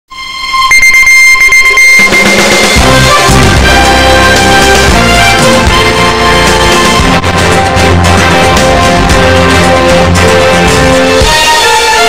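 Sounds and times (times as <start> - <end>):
high electronic tone: 0.1 - 4.9.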